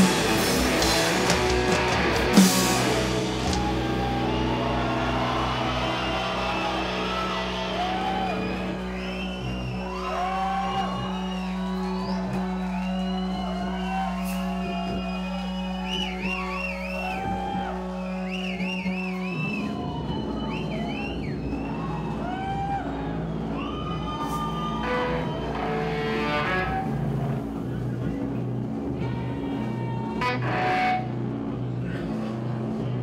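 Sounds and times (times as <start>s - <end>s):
crowd cheering and whistling: 0.0s - 31.2s.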